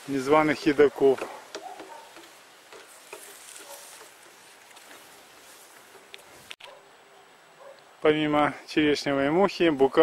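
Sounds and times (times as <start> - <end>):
faint outdoor ambience: 0.0 - 10.0.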